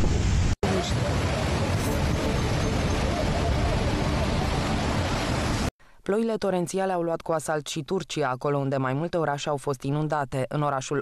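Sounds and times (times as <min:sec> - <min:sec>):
floodwater rushing: 0:00.0 - 0:05.7.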